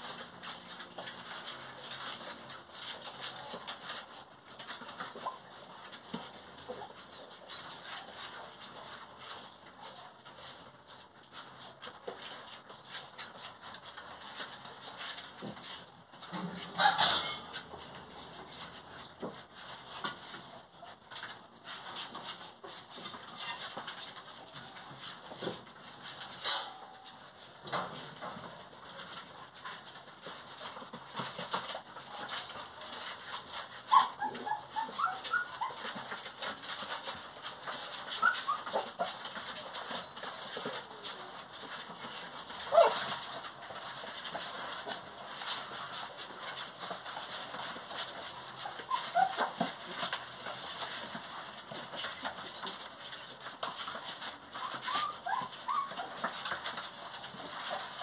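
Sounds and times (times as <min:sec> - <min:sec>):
puppies scratching on cardboard: 0:00.0 - 0:58.0
puppies whimpering and yelping: 0:16.6 - 0:17.9, 0:30.6 - 0:58.0.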